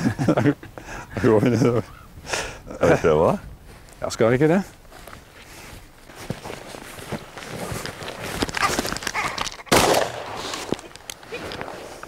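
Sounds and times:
footsteps through grass: 0:03.6 - 0:12.0
shotgun report: 0:09.7 - 0:10.6.

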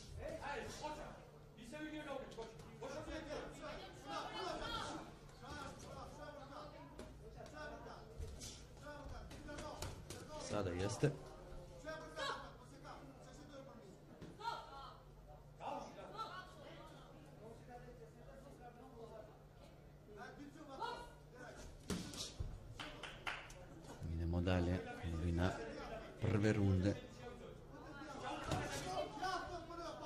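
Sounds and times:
voices calling out in hall: 0:00.0 - 0:17.4, 0:19.2 - 0:22.4.

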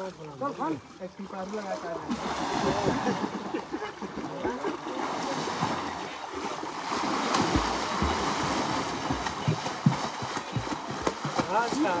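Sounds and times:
river water splashing: 0:00.0 - 0:12.0
sharp splash of person diving: 0:06.8 - 0:10.3.

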